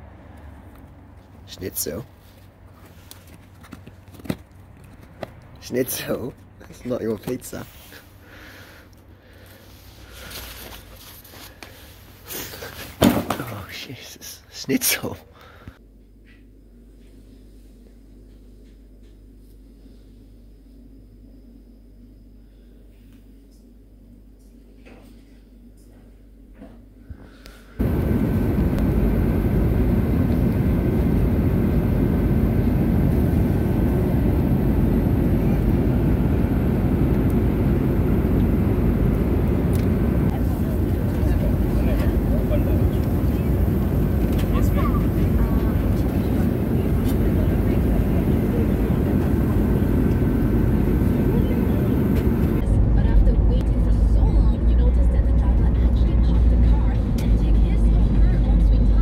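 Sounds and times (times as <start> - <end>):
faint steady whine: 15.3 - 57.0
airliner cabin rumble: 27.8 - 59.0
car interior road rumble: 27.8 - 59.0.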